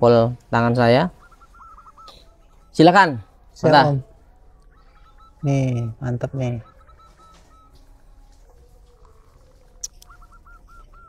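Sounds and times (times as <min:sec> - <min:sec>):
bird chirping faintly: 0:00.0 - 0:11.0.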